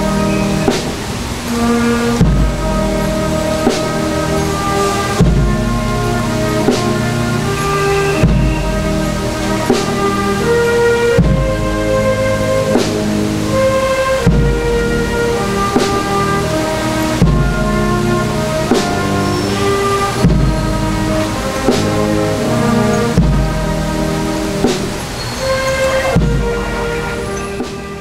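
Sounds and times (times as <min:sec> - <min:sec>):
brass band playing slow march: 0:00.0 - 0:28.0
bass drum beat: 0:02.1 - 0:25.1, 0:26.2 - 0:28.0.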